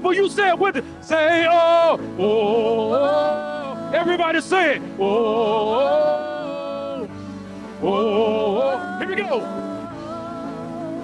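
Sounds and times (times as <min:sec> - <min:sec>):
gospel singing: 0:00.1 - 0:11.0.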